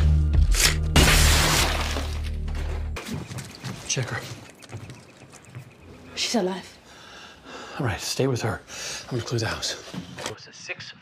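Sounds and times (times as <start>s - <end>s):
bass-heavy music: 0.0s - 3.0s
glass breaking: 0.9s - 2.4s.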